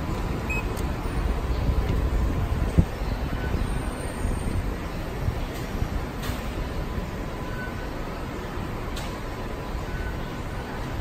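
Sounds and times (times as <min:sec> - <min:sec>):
station background rumble: 0:00.0 - 0:11.0.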